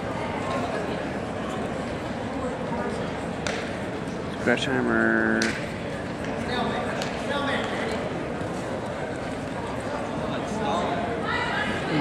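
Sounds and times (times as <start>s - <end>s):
crowd murmur: 0.0s - 12.0s.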